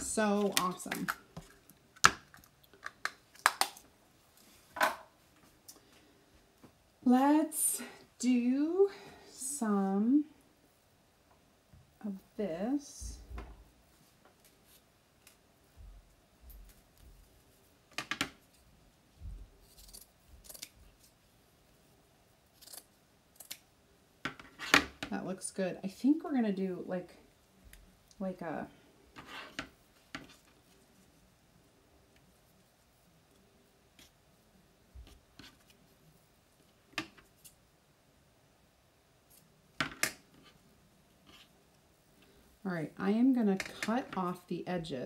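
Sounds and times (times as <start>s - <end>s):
scissors snipping: 19.6s - 20.8s.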